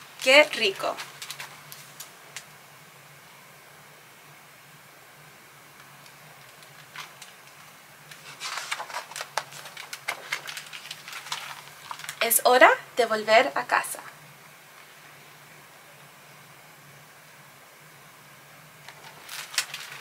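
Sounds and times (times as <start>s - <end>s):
faint low hum: 0.0s - 20.0s
paper pages rustling: 0.2s - 2.4s, 6.3s - 12.2s, 18.8s - 20.0s.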